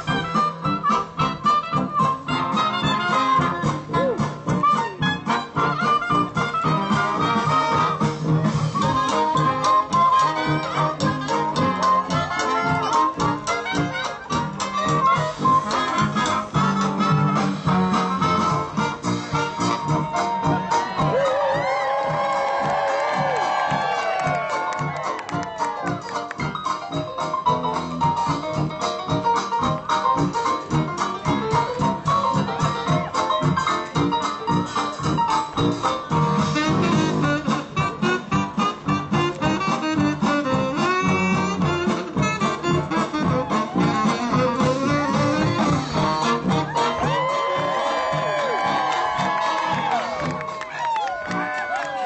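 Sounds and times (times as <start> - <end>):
jazz orchestra playing dance tune: 0.0 - 52.0
audience cheering and whooping: 19.5 - 26.4, 43.2 - 52.0.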